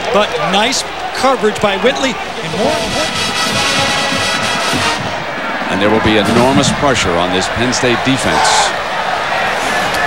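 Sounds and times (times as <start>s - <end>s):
stadium crowd noise: 0.0s - 10.0s
brass band playing: 2.4s - 5.4s.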